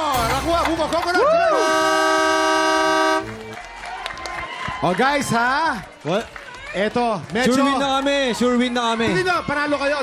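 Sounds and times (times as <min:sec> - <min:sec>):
buzzer horn-like tone: 0:01.5 - 0:03.4.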